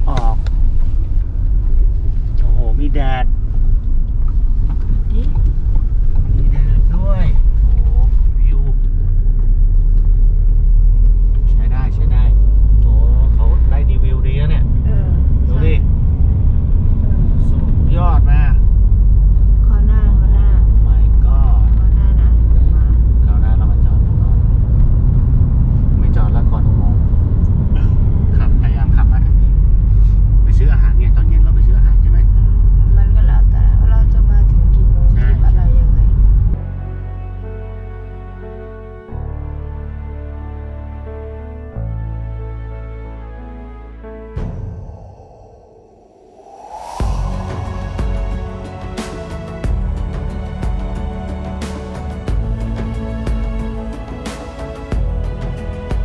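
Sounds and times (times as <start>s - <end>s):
van cabin road and engine rumble: 0.0s - 43.8s, 46.4s - 56.0s.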